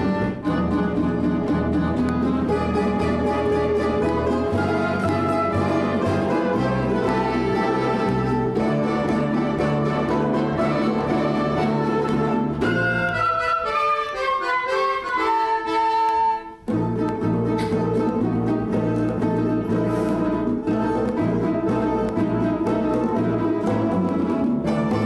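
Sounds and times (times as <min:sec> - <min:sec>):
folk string and accordion ensemble: 0:00.0 - 0:25.0.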